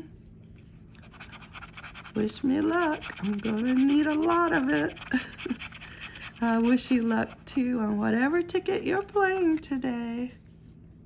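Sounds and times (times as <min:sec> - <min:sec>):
scratching lottery ticket: 0:01.0 - 0:07.5.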